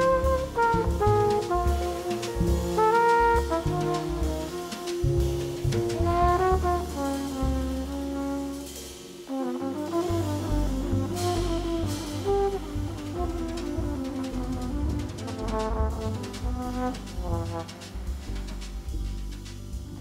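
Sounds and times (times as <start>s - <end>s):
flugelhorn melody: 0.0s - 18.6s
bass: 0.0s - 20.0s
drums played with brushes: 0.0s - 20.0s
piano: 0.0s - 20.0s.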